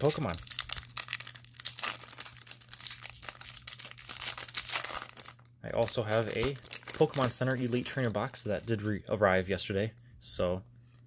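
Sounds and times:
foil wrapper crinkling: 0.0 - 9.0.

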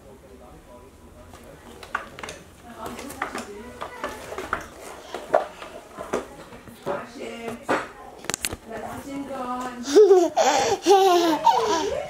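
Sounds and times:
toddler vocalizing: 9.8 - 12.0.

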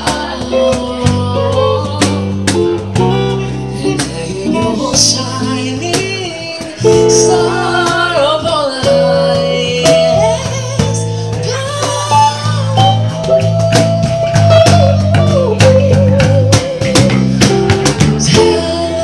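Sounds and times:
man singing into a microphone: 0.0 - 2.8, 3.5 - 17.1
voices singing along: 0.0 - 19.0.

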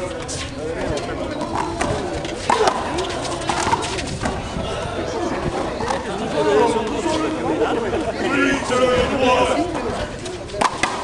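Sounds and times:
indistinct chatter of onlookers: 0.0 - 11.0.

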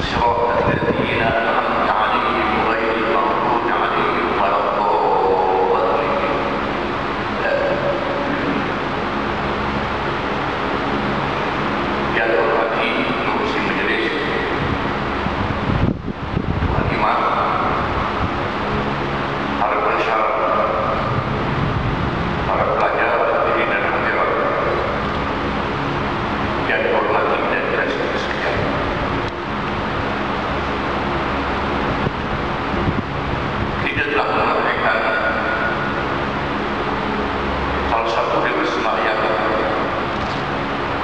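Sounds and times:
man speaking over loudspeaker: 0.0 - 8.9, 12.0 - 15.0, 16.6 - 21.6, 22.2 - 25.8, 26.4 - 29.3, 33.6 - 41.0
low hum: 0.0 - 41.0
low room rumble: 0.0 - 41.0
low rumbling burst: 0.0 - 41.0.

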